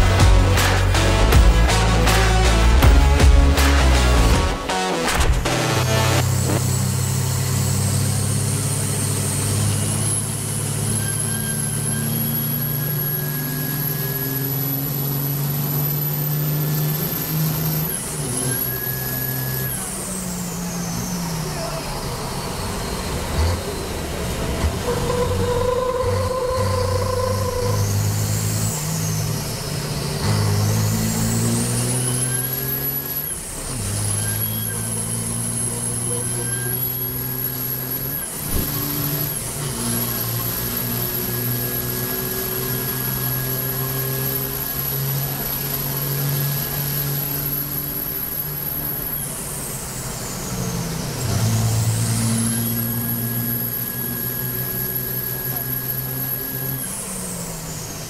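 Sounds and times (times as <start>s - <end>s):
truck diesel engine revving: 0.0s - 58.0s
high turbo whistle: 5.7s - 24.0s, 24.8s - 58.0s.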